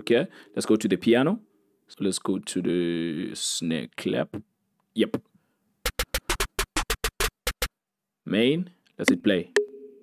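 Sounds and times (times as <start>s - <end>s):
snare clap drum hits: 5.9s - 7.7s.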